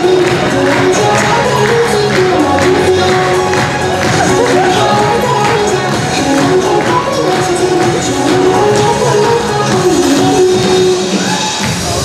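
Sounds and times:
synthesized female singing over beat: 0.0s - 12.0s.

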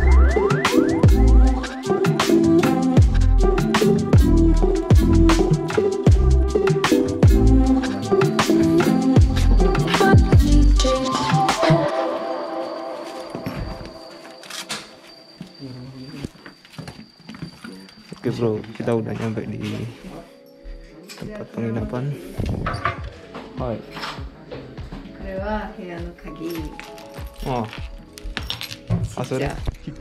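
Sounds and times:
background music: 0.0s - 15.4s, 19.0s - 30.0s
metal keys clinking: 26.4s - 29.4s.

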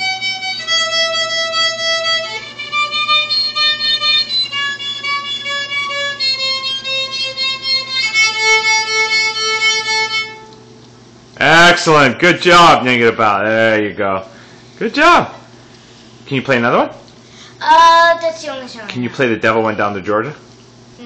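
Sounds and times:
child playing violin: 0.0s - 10.6s.

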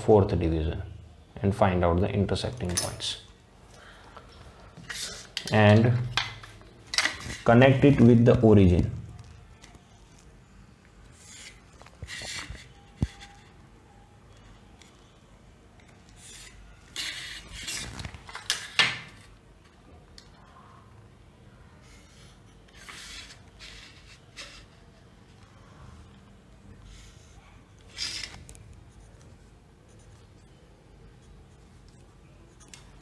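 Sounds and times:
pencil and ruler scraping paper: 11.1s - 13.5s, 16.2s - 17.9s.

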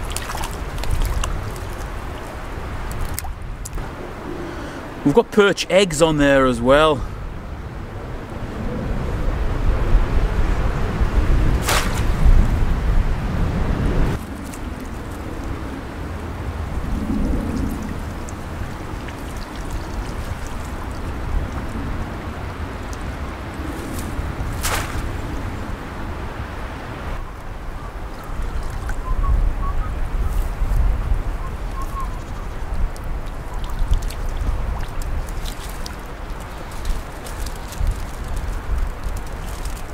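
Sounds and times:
wind rumbling on microphone: 0.0s - 5.1s, 7.0s - 39.9s.

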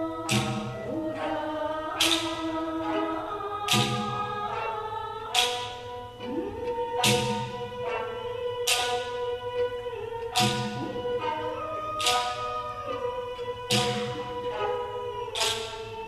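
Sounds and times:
sharp percussive strike: 0.2s - 1.3s, 3.7s - 4.6s, 7.0s - 8.0s, 10.3s - 11.4s, 12.0s - 12.6s, 13.6s - 14.8s, 15.4s - 15.9s.

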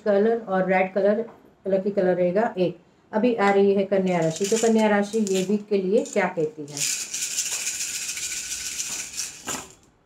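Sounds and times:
shells rattling in hands: 4.1s - 9.9s.

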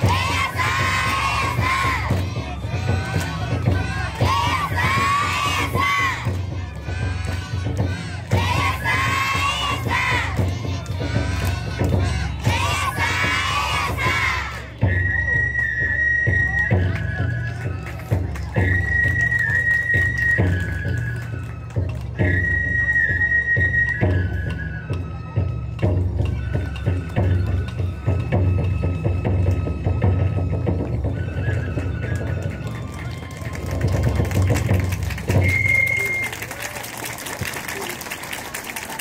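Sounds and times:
steady drum beats: 0.0s - 22.8s, 23.7s - 36.2s
high flute held notes: 35.3s - 36.6s.

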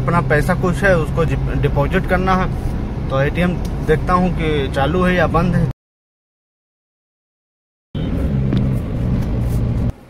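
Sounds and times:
car engine drone: 0.0s - 5.7s, 8.0s - 10.0s
road rumble: 0.0s - 5.7s, 8.0s - 10.0s.

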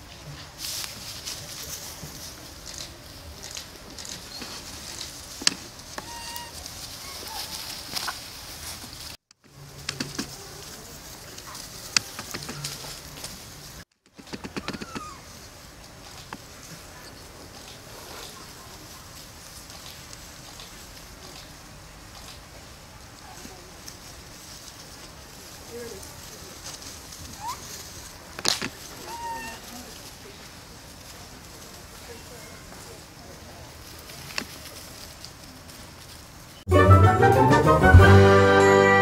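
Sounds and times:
clicks and rustles: 0.0s - 22.7s, 23.4s - 32.0s, 33.7s - 36.6s
monkeys scuffling on grass: 0.0s - 36.7s
monkeys squeaking: 6.0s - 8.2s, 14.3s - 15.3s, 27.4s - 27.8s, 29.0s - 29.7s.

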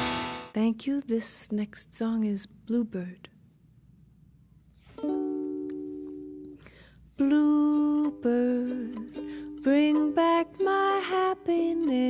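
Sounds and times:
ukulele chord strummed: 0.0s - 0.5s, 4.9s - 12.0s.

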